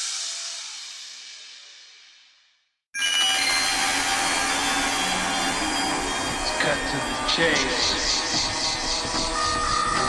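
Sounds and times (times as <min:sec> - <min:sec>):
industrial noise texture: 0:03.4 - 0:10.0.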